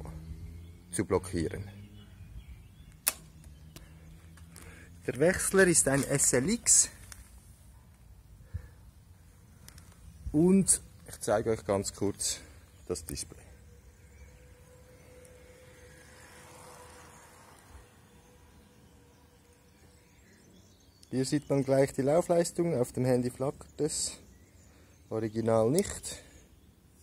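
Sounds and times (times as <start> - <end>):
thin steady hum: 12.4 - 21.1.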